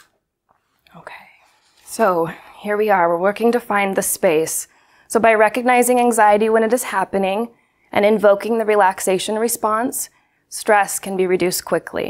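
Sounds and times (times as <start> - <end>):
woman breathing in: 4.7 - 5.1.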